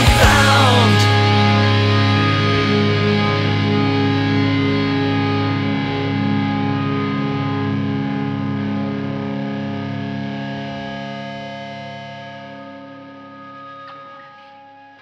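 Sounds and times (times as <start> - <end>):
distorted electric guitar chord: 0.0 - 15.0.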